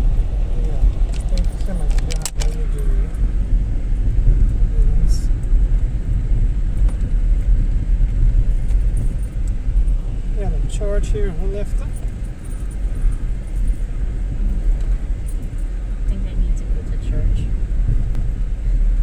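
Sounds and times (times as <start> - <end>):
sharp rattles: 0.8 - 3.2.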